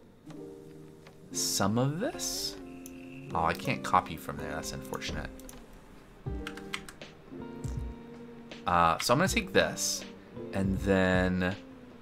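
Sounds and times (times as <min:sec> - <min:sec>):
background music with held notes: 0:00.0 - 0:12.0
computer keyboard keystrokes: 0:06.4 - 0:07.0.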